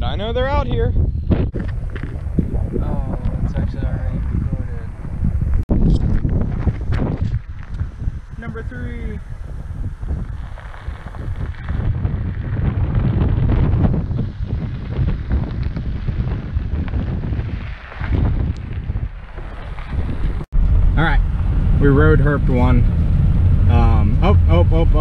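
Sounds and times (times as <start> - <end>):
wind gusting on microphone: 0.0 - 25.0
car engine and road noise: 4.5 - 25.0.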